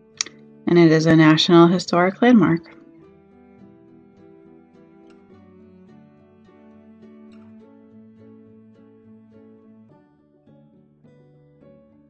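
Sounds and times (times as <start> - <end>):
plucked guitar music: 0.2 - 9.2.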